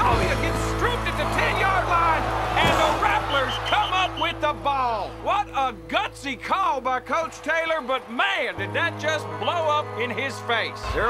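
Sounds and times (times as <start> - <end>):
football crowd shouting: 0.0 - 5.3, 7.0 - 11.0.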